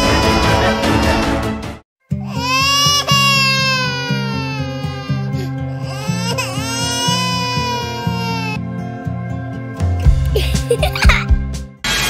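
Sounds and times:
baby crying: 2.2 - 8.6.

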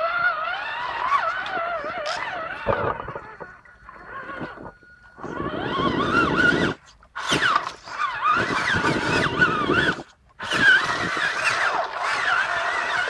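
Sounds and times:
toy truck electric motor whining: 0.0 - 13.0.

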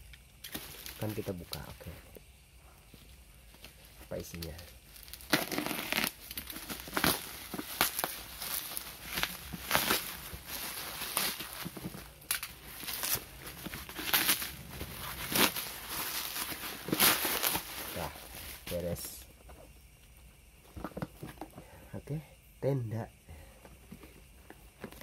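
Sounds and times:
bubble wrap crinkling: 0.4 - 1.8, 3.5 - 19.3.

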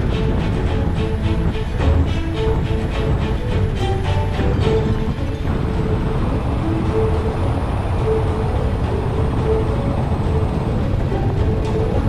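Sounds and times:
helicopter rotor and engine: 0.0 - 12.0
high whine: 0.0 - 12.0.

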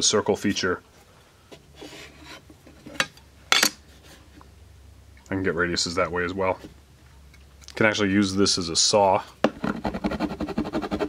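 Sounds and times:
metal scraping across board: 1.8 - 3.2.

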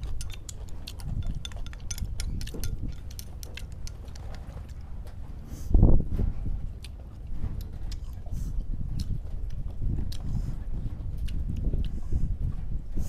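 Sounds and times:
chopsticks clicking on porcelain bowls: 0.0 - 4.8
steady low rumble: 0.0 - 13.0.

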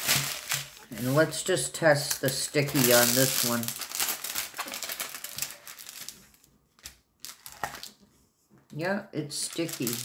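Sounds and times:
plastic film crinkling: 0.0 - 8.0, 9.3 - 10.0.

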